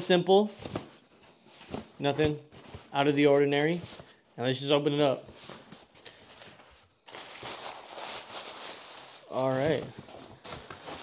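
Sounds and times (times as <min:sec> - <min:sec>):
tissue paper crinkling: 0:05.3 - 0:11.0.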